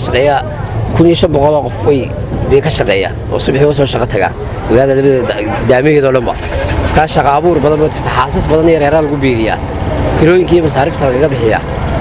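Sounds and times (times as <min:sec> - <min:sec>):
man speaking: 0:00.0 - 0:11.7
low rumble of street traffic: 0:00.0 - 0:12.0.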